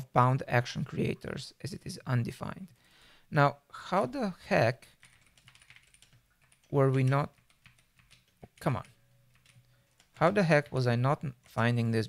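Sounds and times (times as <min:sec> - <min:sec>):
typing on computer keyboard: 0:05.0 - 0:11.6.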